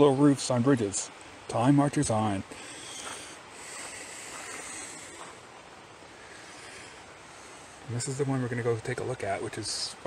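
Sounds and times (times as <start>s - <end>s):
river water rushing: 0.0s - 10.0s.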